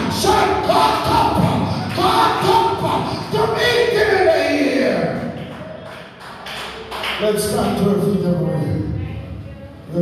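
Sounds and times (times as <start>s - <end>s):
man preaching amplified: 0.0s - 5.4s, 7.1s - 9.0s.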